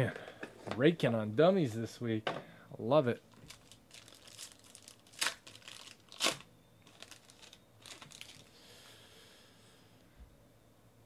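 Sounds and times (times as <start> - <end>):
foil wrapper ripping: 3.3 - 8.5
foil wrapper crinkling: 3.3 - 8.6.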